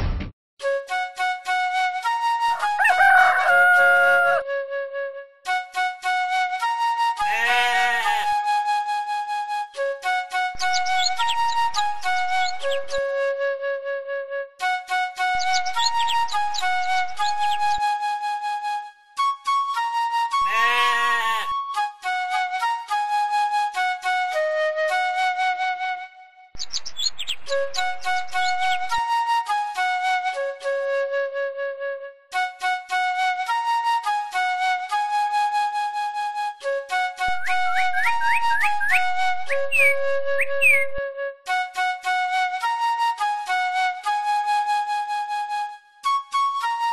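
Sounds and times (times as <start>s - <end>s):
flute melody: 0.6s - 26.5s, 27.4s - 46.9s
bleating animal call: 7.2s - 8.4s, 20.4s - 21.5s.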